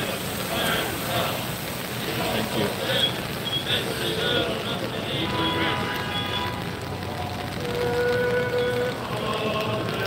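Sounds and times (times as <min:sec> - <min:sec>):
car driving past on wet street: 0:00.0 - 0:10.0
crowd voices: 0:00.0 - 0:10.0.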